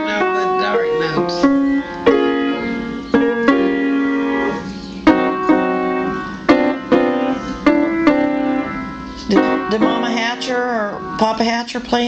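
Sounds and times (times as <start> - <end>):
piano chords ringing: 0.0 - 12.0.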